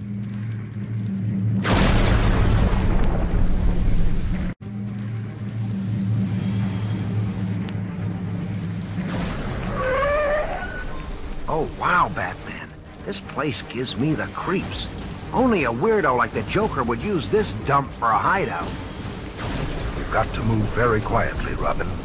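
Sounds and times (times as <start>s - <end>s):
music: 0.0s - 22.0s
tyre screech: 9.7s - 11.1s.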